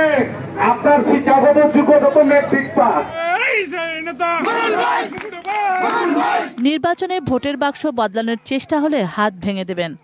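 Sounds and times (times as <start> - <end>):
man shouting through loudspeaker: 0.0 - 8.8
crowd noise: 0.0 - 10.0.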